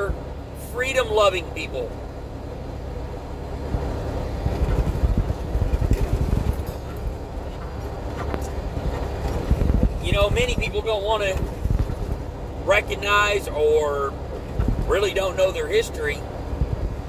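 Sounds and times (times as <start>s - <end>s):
truck engine and road rumble: 0.0s - 17.0s
truck jolting over bumps: 4.4s - 12.3s.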